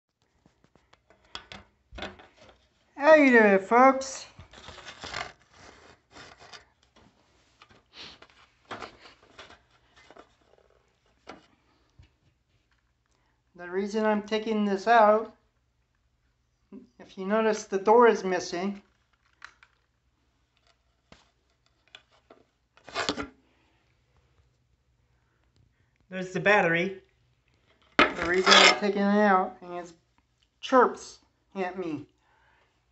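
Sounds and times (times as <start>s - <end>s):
plastic clicks and scraping: 4.4s - 7.0s, 18.8s - 23.4s.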